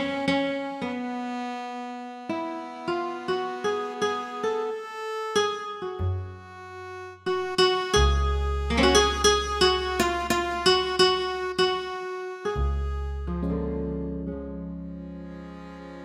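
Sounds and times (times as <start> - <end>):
accordion melody: 0.0 - 16.0.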